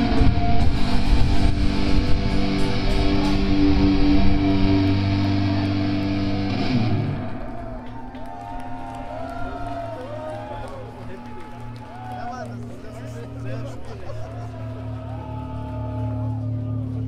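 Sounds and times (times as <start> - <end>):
distorted electric guitars chord: 0.0 - 7.6
audience voices and shouts: 0.0 - 17.0.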